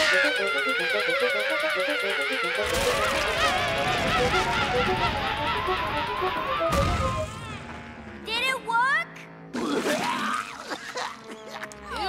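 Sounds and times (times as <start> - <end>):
background music: 0.0 - 11.2.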